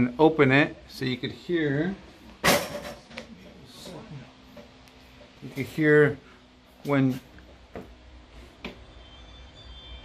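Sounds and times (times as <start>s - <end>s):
alarm high tones: 8.8s - 10.0s.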